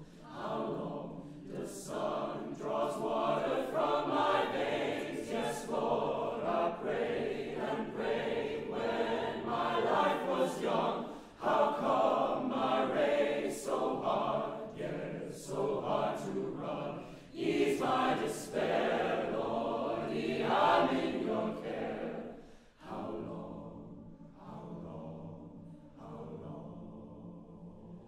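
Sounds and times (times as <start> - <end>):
mixed choir singing: 0.0 - 28.0.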